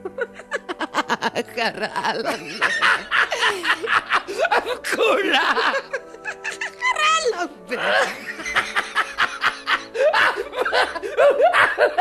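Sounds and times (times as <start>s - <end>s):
rapid laughter: 0.0s - 1.4s, 2.2s - 6.9s, 7.9s - 12.0s
backing music with sustained notes: 0.0s - 12.0s.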